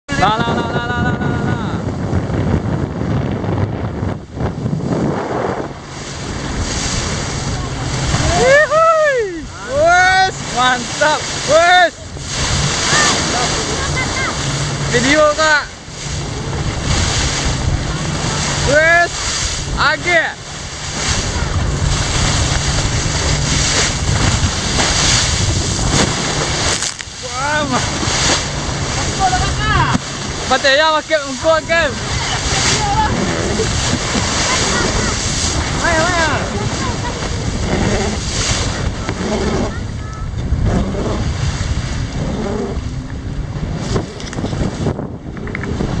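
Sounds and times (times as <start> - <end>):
motorboat running fast: 0.1 - 46.0
waves against boat hull: 0.1 - 46.0
wind buffeting microphone: 0.1 - 46.0.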